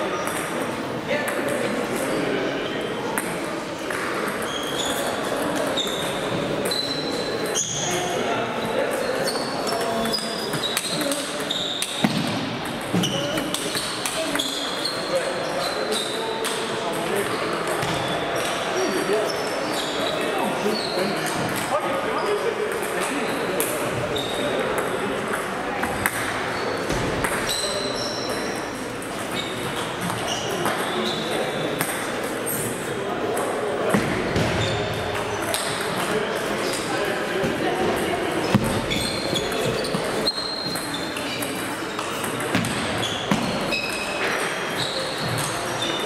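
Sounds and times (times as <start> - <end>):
murmur of voices: 0.0 - 46.0.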